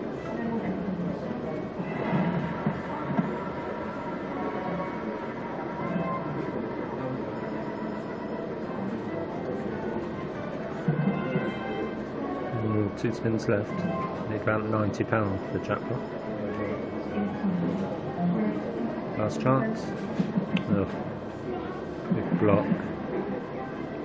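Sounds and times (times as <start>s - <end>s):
slot machine game music: 9.8s - 16.9s.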